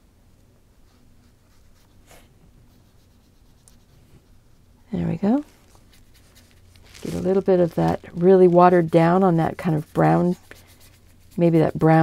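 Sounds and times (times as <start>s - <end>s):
paintbrush strokes on paper: 0.8s - 12.0s.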